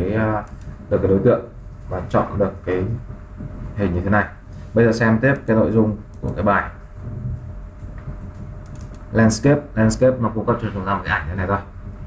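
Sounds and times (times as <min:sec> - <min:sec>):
low room hum: 0:00.0 - 0:12.0
computer mouse clicks: 0:08.3 - 0:09.1.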